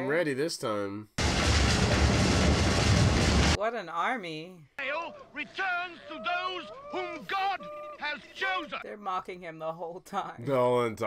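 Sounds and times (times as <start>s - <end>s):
loud low rushing noise: 1.2s - 3.6s.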